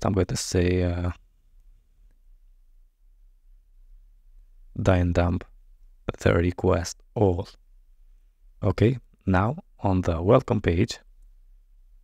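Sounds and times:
person speaking: 4.7s - 7.6s, 8.6s - 11.1s.

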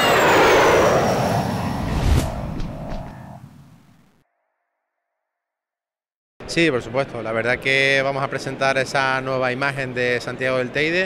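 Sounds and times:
jet airliner flyby: 0.0s - 4.0s.

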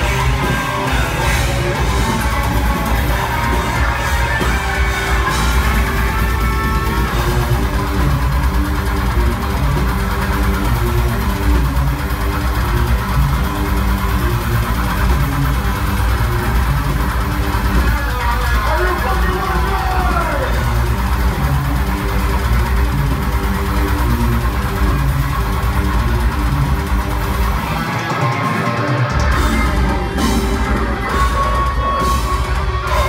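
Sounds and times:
metal band playing live: 0.0s - 33.0s.

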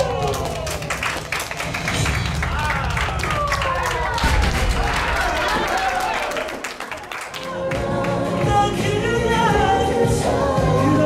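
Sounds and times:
small group clapping: 0.0s - 8.6s
background music: 7.2s - 11.0s.

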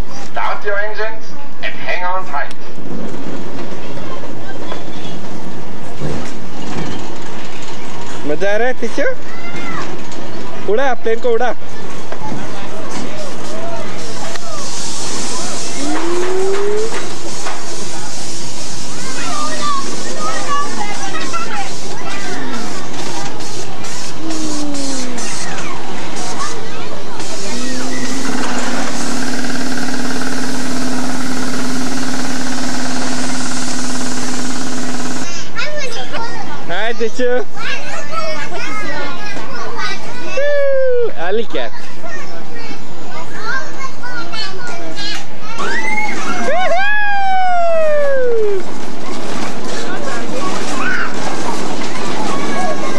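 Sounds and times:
children talking and calling out: 9.1s - 10.5s, 11.8s - 17.3s, 18.9s - 29.5s, 35.2s - 52.9s
children calling out: 15.3s - 17.2s, 24.0s - 29.0s, 44.2s - 48.8s.

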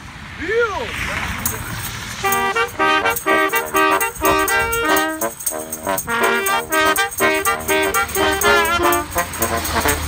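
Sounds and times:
road traffic: 0.0s - 10.0s
tambourine jingling: 1.4s - 10.0s
brass trio playing lively tune: 1.5s - 10.0s.

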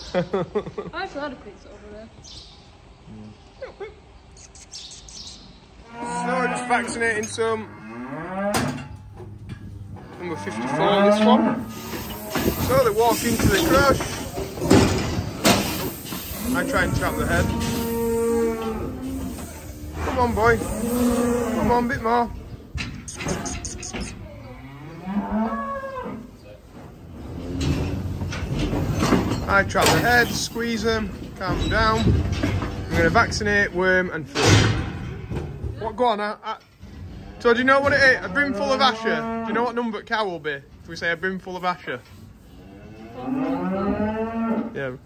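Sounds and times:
cow mooing: 5.8s - 8.8s, 10.0s - 13.8s, 16.3s - 22.0s, 24.4s - 26.3s, 38.2s - 39.7s, 42.6s - 44.7s.

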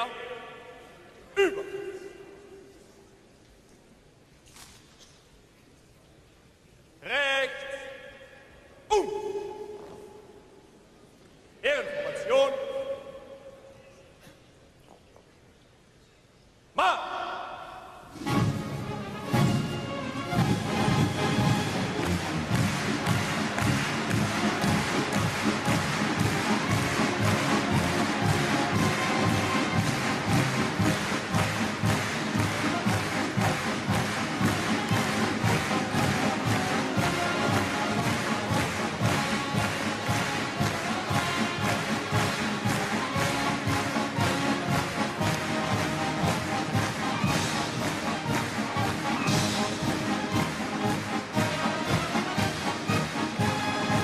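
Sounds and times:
military band playing march: 18.2s - 54.0s
trombones: 18.2s - 54.0s
steady drum beat: 20.4s - 54.0s.

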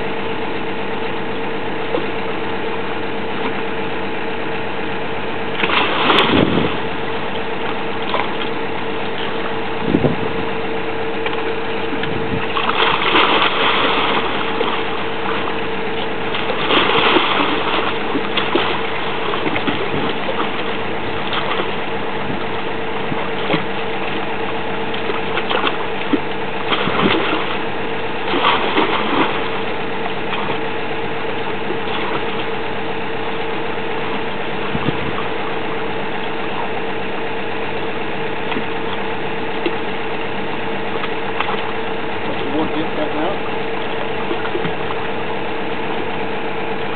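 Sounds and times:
drilling rig engine running: 0.0s - 46.9s.

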